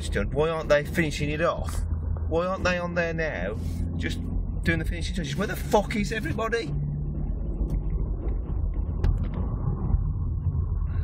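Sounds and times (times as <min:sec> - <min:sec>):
car cabin road rumble: 0:00.0 - 0:11.0.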